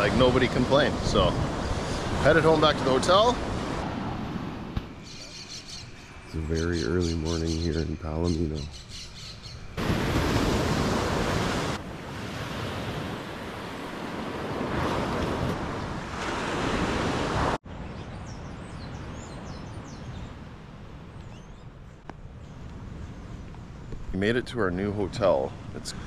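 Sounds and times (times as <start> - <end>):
birds chirping: 0.0 - 3.6, 4.8 - 10.0, 17.8 - 26.0
surf breaking on beach: 0.0 - 4.9, 9.8 - 17.6.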